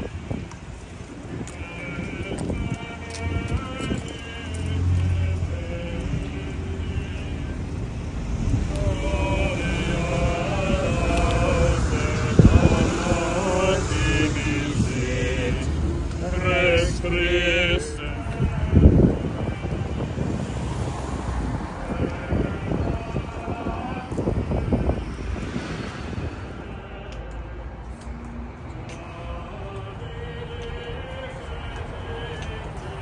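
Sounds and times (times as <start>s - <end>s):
steady low rumble: 0.0s - 20.5s, 21.4s - 33.0s
wind buffeting microphone: 0.0s - 27.1s
voices singing plainchant: 1.0s - 33.0s.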